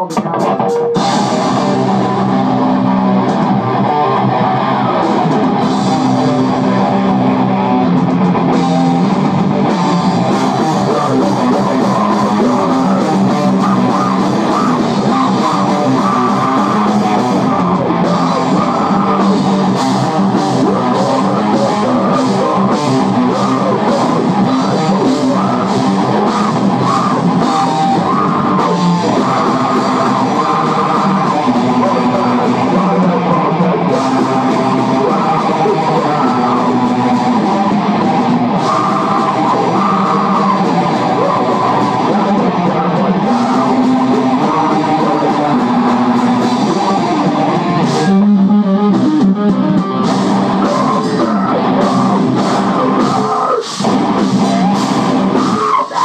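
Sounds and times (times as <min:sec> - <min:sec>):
distorted electric guitar: 0:00.0 - 0:56.0
drum kit: 0:00.0 - 0:56.0
electric bass: 0:00.0 - 0:56.0.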